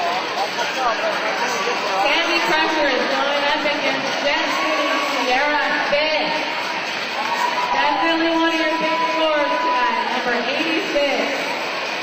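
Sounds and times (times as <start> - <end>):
voices talking in a hall: 0.0 - 12.0.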